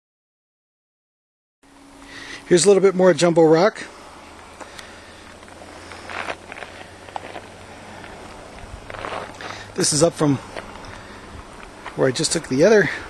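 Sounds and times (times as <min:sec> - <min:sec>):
steady low hum: 0:01.6 - 0:13.0
voice: 0:02.5 - 0:03.9, 0:09.8 - 0:10.5, 0:12.0 - 0:13.0
faint short scuffs: 0:05.4 - 0:09.7.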